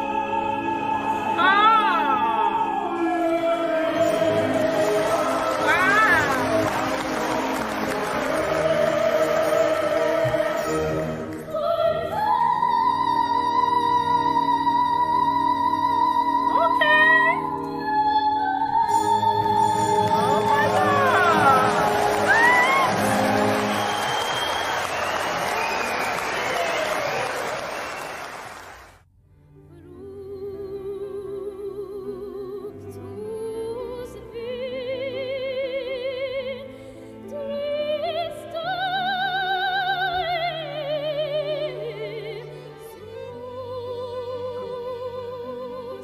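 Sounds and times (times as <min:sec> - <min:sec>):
orchestral music: 0:00.0 - 0:28.5
audience applauding: 0:04.1 - 0:11.4, 0:19.8 - 0:29.0
audience cheering: 0:05.0 - 0:08.8, 0:20.1 - 0:29.0.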